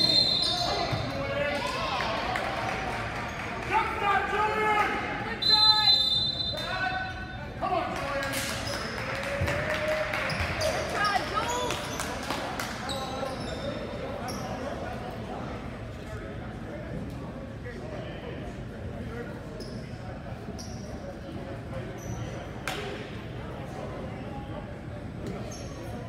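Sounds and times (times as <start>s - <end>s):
referee whistle: 0.0s - 1.0s, 5.3s - 7.2s.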